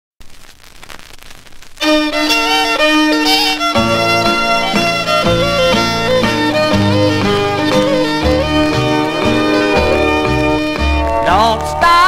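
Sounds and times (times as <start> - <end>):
vinyl record surface crackle: 0.2 - 12.0
band with bass playing: 1.8 - 12.0
country fiddle playing: 1.8 - 12.0.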